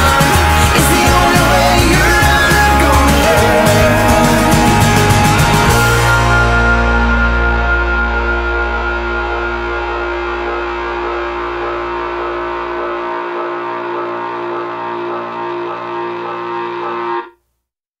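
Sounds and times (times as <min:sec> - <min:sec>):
distorted electric guitar chord ringing: 0:00.0 - 0:17.4.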